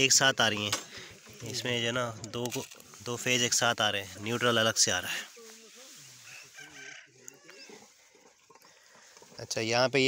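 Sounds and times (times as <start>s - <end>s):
faint chicken clucking: 6.0s - 9.2s.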